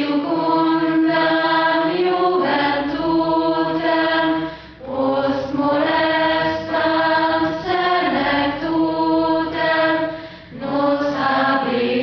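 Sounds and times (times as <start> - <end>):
choral singing in long notes: 0.0 - 12.0.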